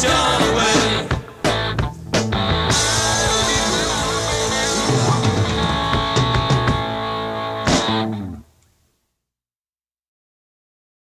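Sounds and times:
surf rock band playing: 0:00.0 - 0:08.4.

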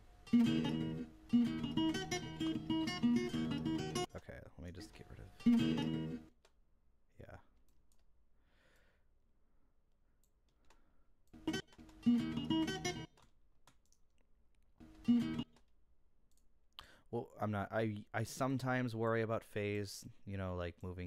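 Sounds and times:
acoustic fingerstyle guitar: 0:00.3 - 0:04.1, 0:05.4 - 0:06.3, 0:11.4 - 0:13.1, 0:14.9 - 0:15.4
clicks: 0:07.6 - 0:08.1, 0:10.2 - 0:12.1, 0:13.0 - 0:16.9.

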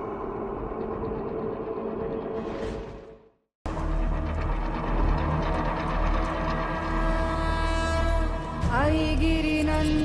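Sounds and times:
dramatic background music: 0:00.0 - 0:10.0
low rumbling drone: 0:00.0 - 0:10.0.

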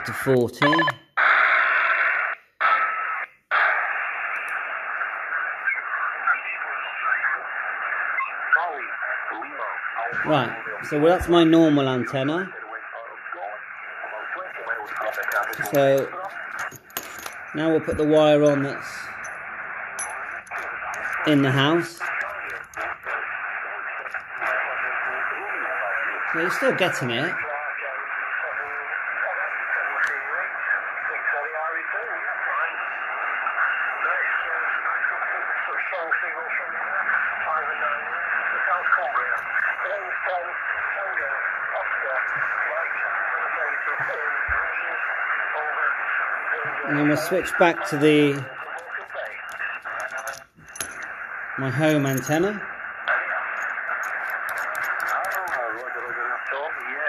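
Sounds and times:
radio band noise hiss: 0:00.0 - 0:57.0
faint voice over radio: 0:02.6 - 0:16.7, 0:20.6 - 0:50.4, 0:51.5 - 0:57.0.

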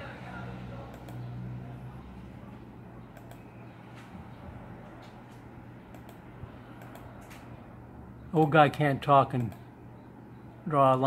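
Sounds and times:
computer mouse clicks: 0:00.9 - 0:01.3, 0:03.1 - 0:03.5, 0:05.9 - 0:07.5, 0:09.4 - 0:09.6.

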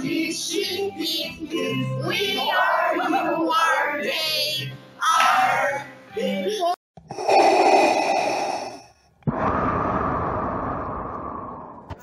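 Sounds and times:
breathy rush of noise: 0:07.1 - 0:12.0.

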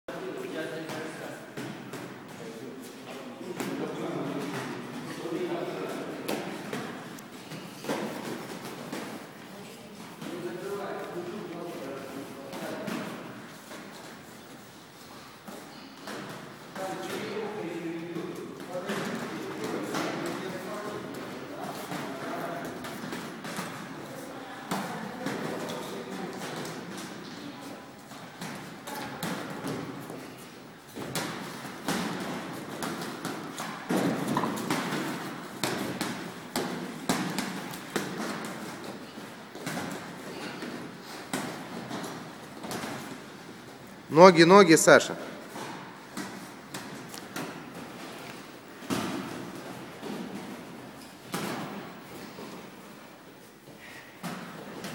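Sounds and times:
footwork on ring canvas: 0:00.2 - 0:44.6, 0:45.3 - 0:54.9.

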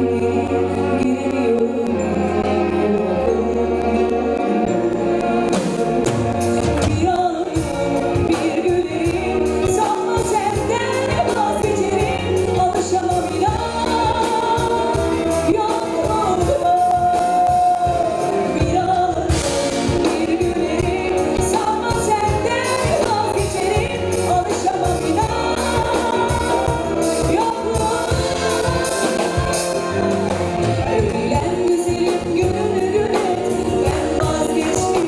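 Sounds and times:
woman singing into microphone: 0:00.0 - 0:35.0.

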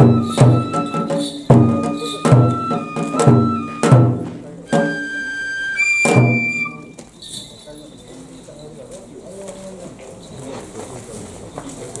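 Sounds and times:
faint low voices: 0:07.1 - 0:12.0.

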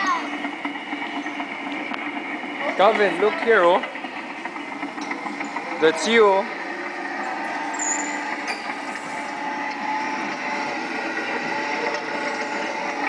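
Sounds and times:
kiddie ride drone with held tones: 0:00.0 - 0:13.0.

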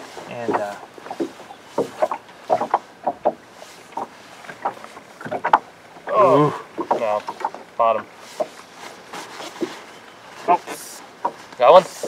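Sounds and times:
knocks on boat: 0:00.0 - 0:05.7
water slapping on hull: 0:00.0 - 0:11.6.

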